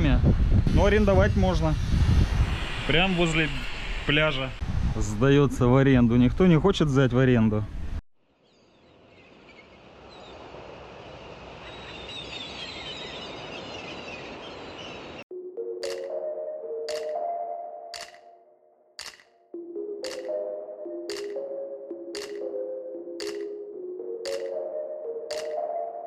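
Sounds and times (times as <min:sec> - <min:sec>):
rush of noise: 0:00.2 - 0:05.0
electronic music with pings: 0:15.3 - 0:18.5, 0:19.5 - 0:26.0.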